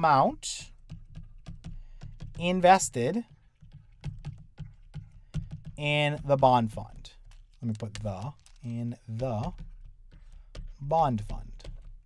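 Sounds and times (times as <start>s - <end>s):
stylus tapping on pen tablet: 0.6s - 12.0s.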